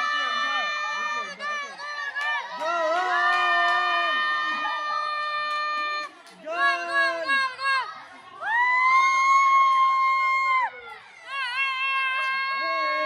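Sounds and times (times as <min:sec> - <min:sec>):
children screaming: 0:06.9 - 0:13.0.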